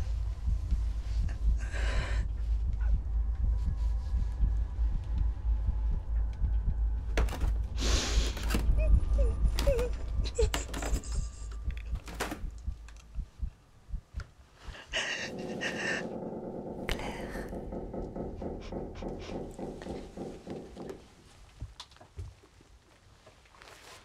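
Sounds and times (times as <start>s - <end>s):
low rumbling drone: 0.0s - 21.2s
person breathing: 0.9s - 4.5s, 7.7s - 8.7s, 14.5s - 21.1s
rustles and knocks: 15.3s - 24.0s.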